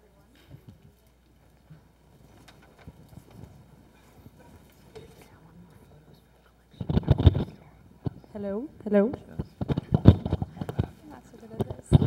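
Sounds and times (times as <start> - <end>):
lapel microphone handling noise: 0.4 - 5.4, 6.7 - 12.0.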